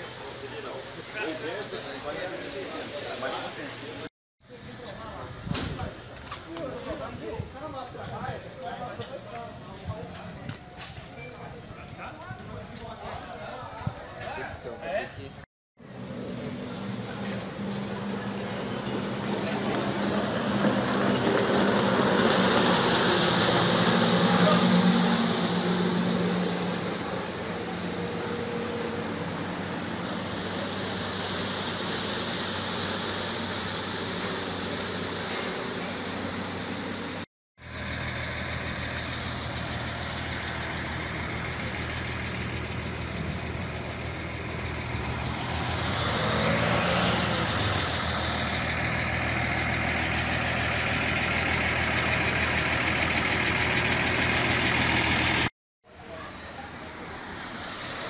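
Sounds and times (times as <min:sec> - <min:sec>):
road traffic: 0:00.0 - 0:58.0
vehicle passing: 0:16.0 - 0:36.2, 0:37.8 - 0:52.6.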